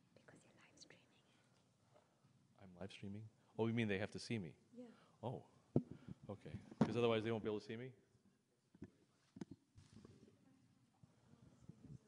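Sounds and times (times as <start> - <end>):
person whispering: 0.1 - 1.5.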